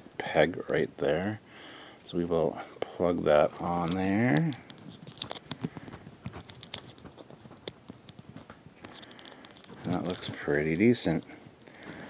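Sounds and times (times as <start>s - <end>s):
small plastic clicks and rubbing: 3.5s - 10.6s.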